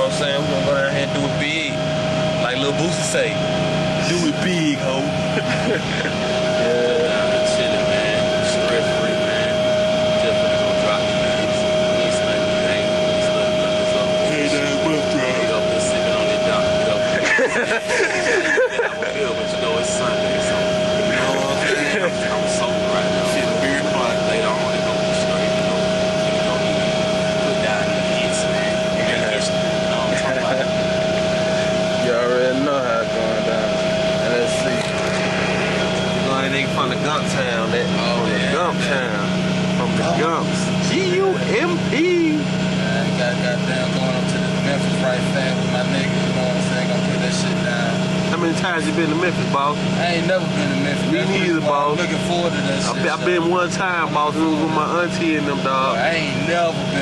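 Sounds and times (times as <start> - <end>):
bus engine drone: 0.0 - 57.0
man talking: 0.0 - 57.0.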